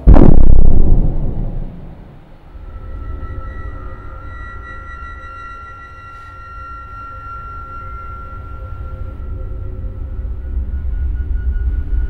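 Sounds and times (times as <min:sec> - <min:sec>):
deep boom rumbling: 0:00.0 - 0:02.5.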